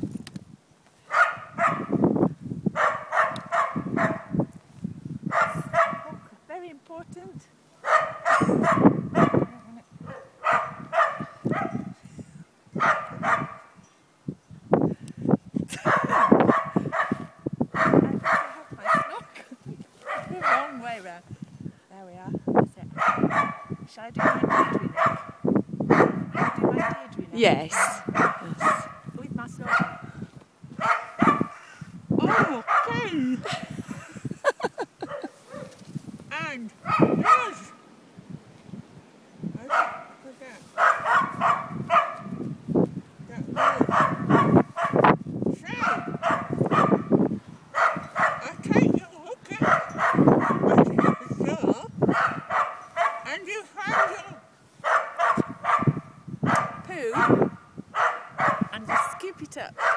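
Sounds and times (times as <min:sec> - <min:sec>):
dogs barking: 0:01.1 - 0:02.0, 0:02.8 - 0:04.4, 0:05.3 - 0:06.2, 0:07.8 - 0:12.0, 0:12.8 - 0:13.8, 0:15.8 - 0:19.4, 0:20.0 - 0:20.8, 0:23.0 - 0:30.1, 0:30.8 - 0:31.6, 0:32.2 - 0:33.1, 0:34.7 - 0:35.8, 0:36.8 - 0:37.8, 0:39.7 - 0:42.4, 0:43.5 - 0:45.1, 0:45.8 - 0:48.6, 0:49.5 - 0:51.4, 0:52.0 - 0:59.9.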